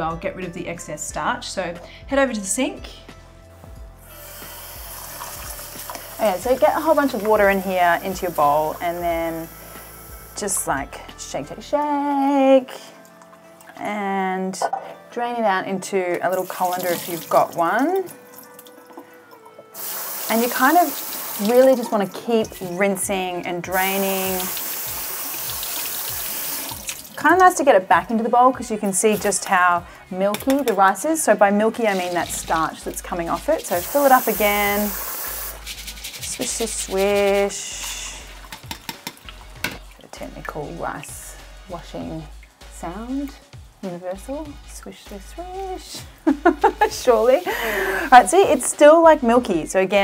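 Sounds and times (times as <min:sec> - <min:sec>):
tap water running: 0:04.1 - 0:10.9, 0:16.2 - 0:27.6, 0:31.8 - 0:40.8, 0:46.2 - 0:48.7.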